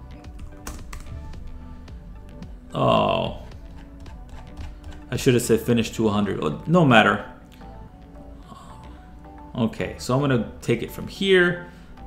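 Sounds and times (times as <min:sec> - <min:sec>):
faint background music: 0:00.0 - 0:12.0
keyboard typing: 0:00.3 - 0:01.2, 0:03.6 - 0:05.2.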